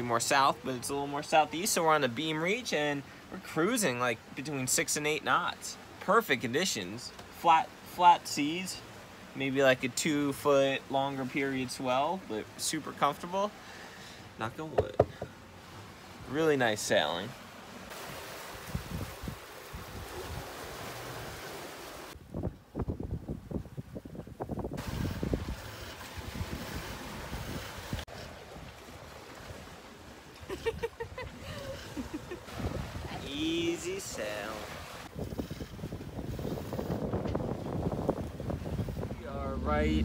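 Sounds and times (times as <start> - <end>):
water rushing along hull: 0.0 - 22.5, 23.4 - 40.0
wind buffeting microphone: 18.5 - 20.6, 22.2 - 28.0, 32.5 - 33.3, 34.9 - 40.0.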